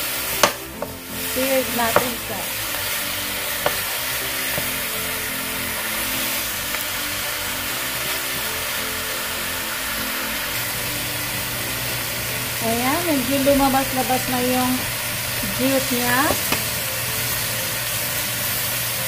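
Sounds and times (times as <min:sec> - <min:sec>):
chicken sizzling in a pan: 0:00.0 - 0:19.0.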